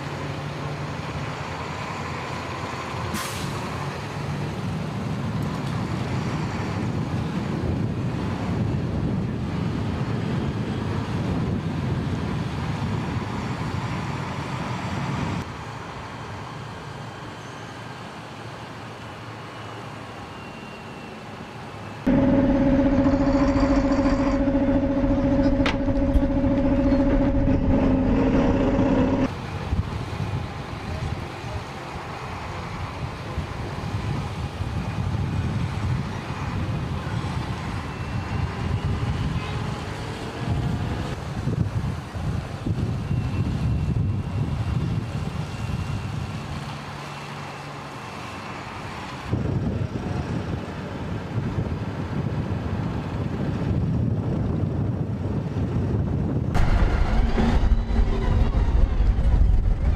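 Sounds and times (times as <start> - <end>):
armoured vehicle engines and road rumble: 0.0 - 59.9
loud engine drone with hum: 22.1 - 29.8, 56.4 - 59.9.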